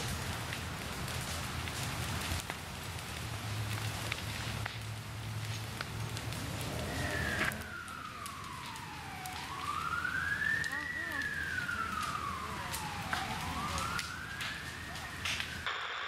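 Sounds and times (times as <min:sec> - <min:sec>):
fire crackling and popping: 0:00.0 - 0:16.0
emergency siren wailing: 0:03.8 - 0:15.7.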